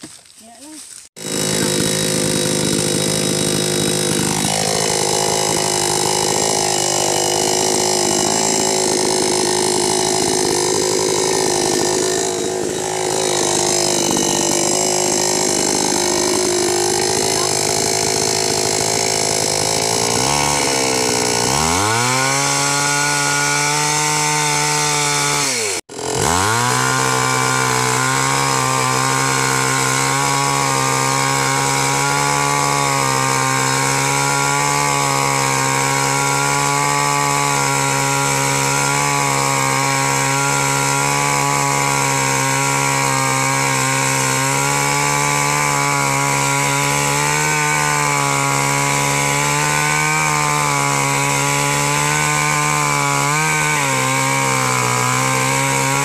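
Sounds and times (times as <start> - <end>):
chainsaw cutting wood: 0.0 - 56.0.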